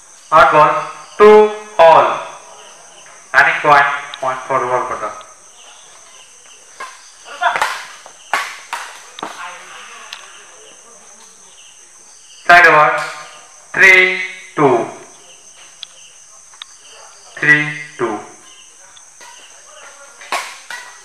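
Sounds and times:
high insect chirring: 0.0s - 21.0s
racket striking shuttlecock: 6.8s - 9.4s, 20.2s - 21.0s.

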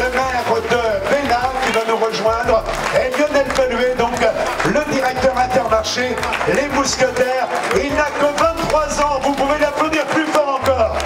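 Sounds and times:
announcer over public address: 0.0s - 11.0s
background music: 0.0s - 11.0s.

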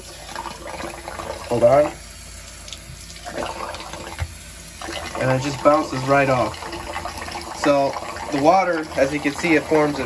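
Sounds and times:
faucet running into sink: 0.0s - 10.0s.

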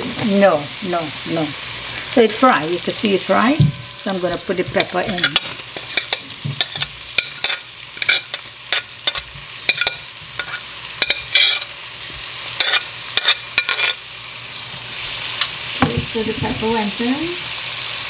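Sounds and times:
garlic sizzling in hot oil: 0.0s - 18.0s
spoon clicking and scraping plate: 4.8s - 11.7s, 12.6s - 14.0s.

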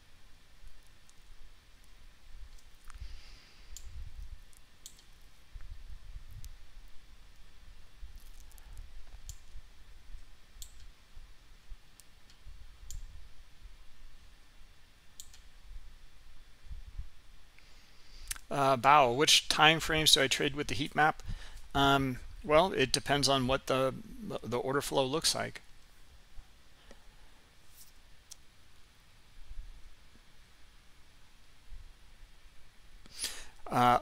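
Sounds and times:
faint low rumble: 0.0s - 33.1s
computer mouse clicking: 4.5s - 5.1s, 10.6s - 10.9s, 15.2s - 15.5s.

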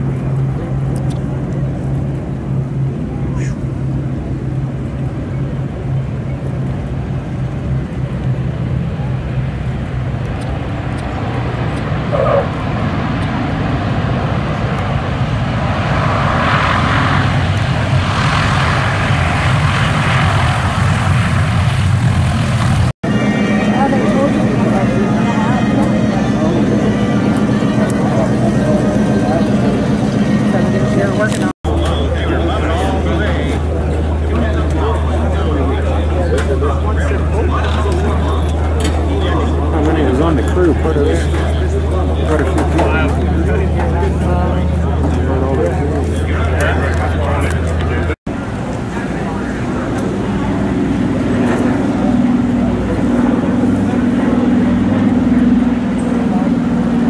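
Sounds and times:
propeller aircraft engines droning: 0.0s - 57.0s.

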